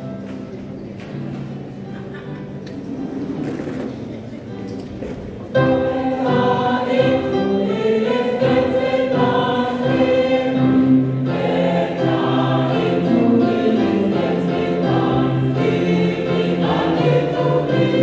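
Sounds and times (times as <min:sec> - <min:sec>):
choir singing gospel: 0:05.6 - 0:18.0.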